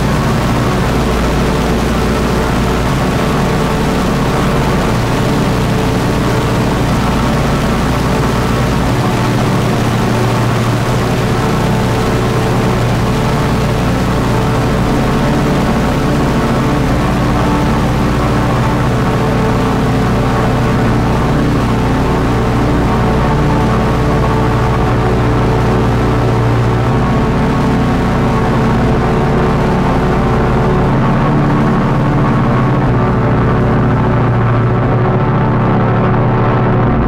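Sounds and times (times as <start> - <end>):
dark ambient drone music: 0.0 - 37.0.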